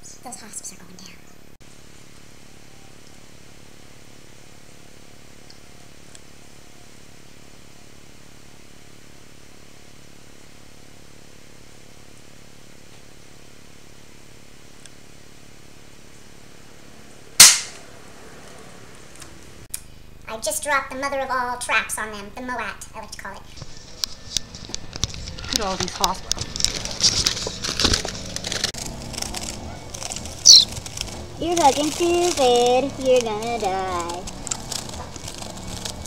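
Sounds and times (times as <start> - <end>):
low background hum: 0.0 - 36.0
rifle shot: 17.4 - 17.8.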